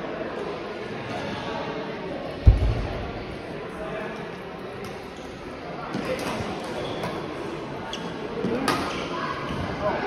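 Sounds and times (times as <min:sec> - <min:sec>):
murmur of voices in a hall: 0:00.0 - 0:10.0
heavy low thud: 0:02.5 - 0:03.3.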